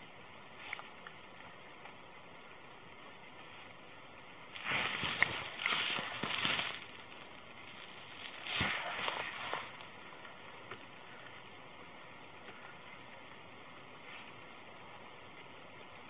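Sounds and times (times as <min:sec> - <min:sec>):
low steady hiss: 0:00.0 - 0:16.0
cloth rubbing on microphone: 0:08.3 - 0:09.8.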